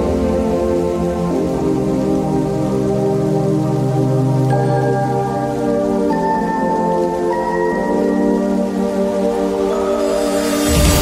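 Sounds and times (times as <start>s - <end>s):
slow sustained chords music: 0.0s - 11.0s.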